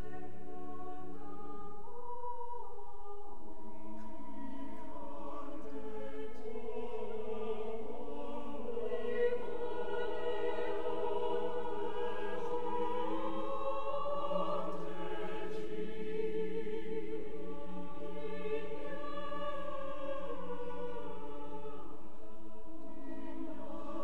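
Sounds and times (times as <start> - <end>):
choir singing sustained chords: 0.0 - 24.0.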